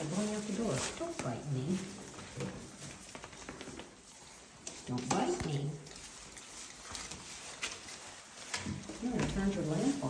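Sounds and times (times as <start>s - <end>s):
puppies rustling in paper bedding: 0.0s - 10.0s.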